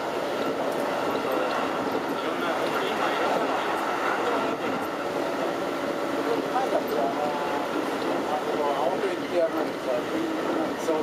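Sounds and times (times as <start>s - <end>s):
train running noise: 0.0s - 11.0s
faint voices: 0.5s - 11.0s.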